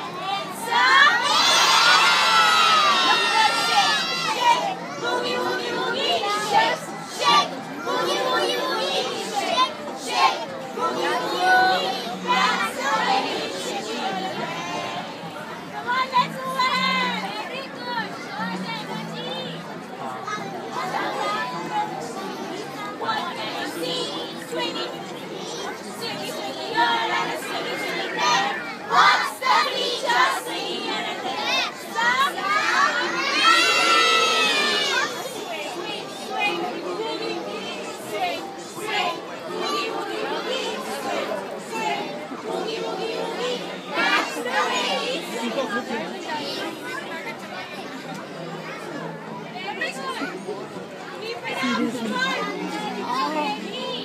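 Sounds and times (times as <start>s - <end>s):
children shouting: 0.0s - 15.1s, 20.0s - 49.1s
children talking and calling out: 0.0s - 54.0s.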